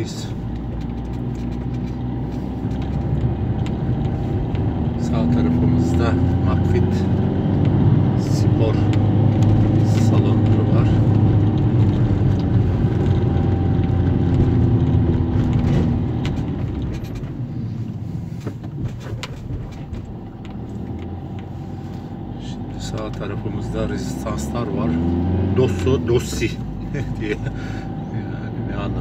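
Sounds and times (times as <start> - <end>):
car engine hum: 0.0 - 29.0
road noise inside car: 0.0 - 29.0.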